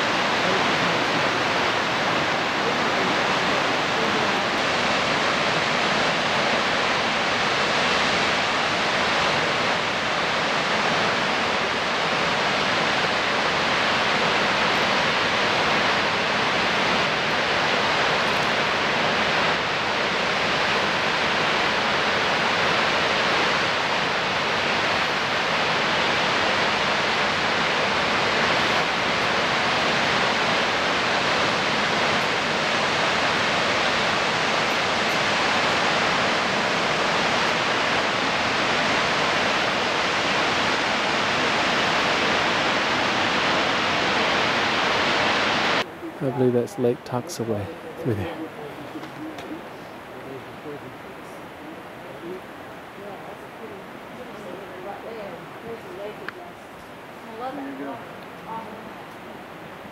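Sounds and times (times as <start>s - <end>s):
waterfall rushing: 0.0s - 59.9s.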